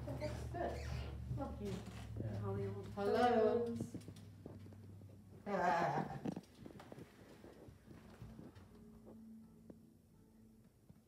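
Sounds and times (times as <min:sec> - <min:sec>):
footsteps on hardwood floor: 0:00.0 - 0:05.2.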